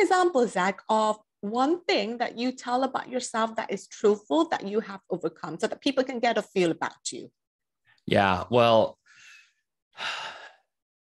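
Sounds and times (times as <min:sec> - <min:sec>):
man sighing: 0:10.0 - 0:10.6.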